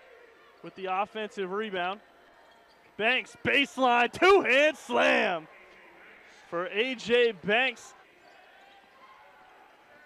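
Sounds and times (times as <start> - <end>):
low crowd murmur: 0.0 - 10.0.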